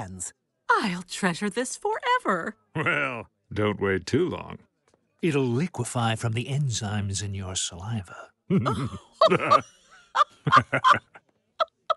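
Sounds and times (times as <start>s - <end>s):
woman and man laughing: 8.5s - 11.9s.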